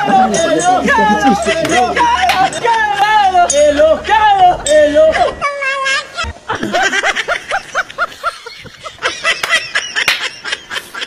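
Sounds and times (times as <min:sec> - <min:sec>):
snickering laughter: 0:04.9 - 0:11.0.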